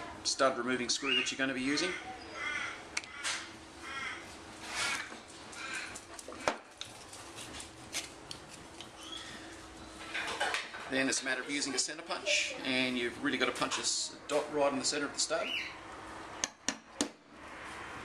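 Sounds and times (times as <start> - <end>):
bird calling: 1.0 - 5.1, 9.0 - 10.1, 15.4 - 15.8.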